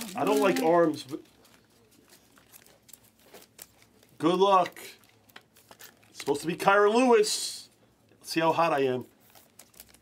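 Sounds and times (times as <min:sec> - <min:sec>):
trading cards rustling and clicking: 0:00.0 - 0:06.6, 0:09.2 - 0:10.0.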